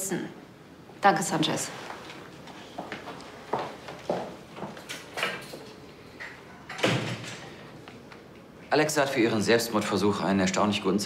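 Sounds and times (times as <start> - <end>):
door shutting: 6.6 - 7.6.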